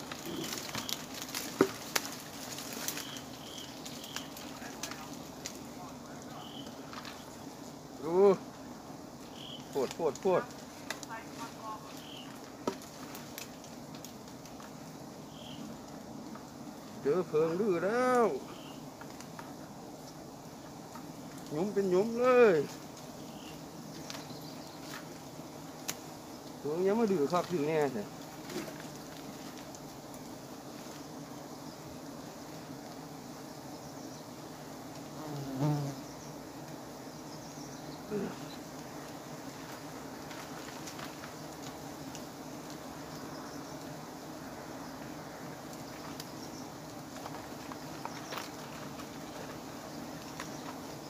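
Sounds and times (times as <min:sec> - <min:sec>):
bee colony humming: 0:00.0 - 0:51.0
faint hiss: 0:00.0 - 0:51.0
small ticks: 0:00.1 - 0:05.6, 0:09.2 - 0:17.0, 0:18.1 - 0:21.6, 0:22.7 - 0:26.6, 0:27.3 - 0:31.6, 0:34.8 - 0:44.0, 0:44.9 - 0:51.0.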